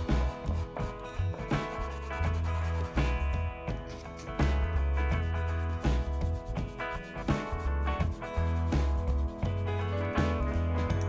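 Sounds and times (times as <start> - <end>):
pastel scraping across paper: 0.0 - 10.2
background music with bass line: 0.0 - 11.0.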